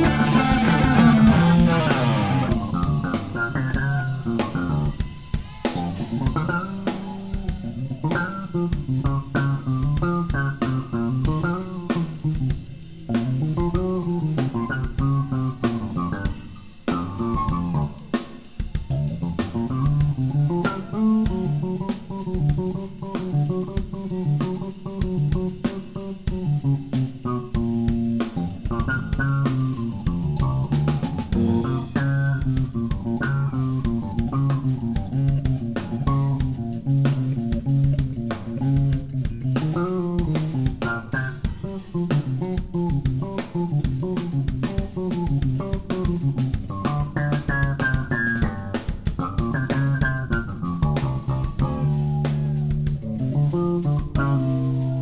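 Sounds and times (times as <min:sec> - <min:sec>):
bass guitar line: 0:00.0 - 0:55.0
drum-kit beat: 0:00.0 - 0:55.0
electric guitar lines: 0:00.0 - 0:55.0.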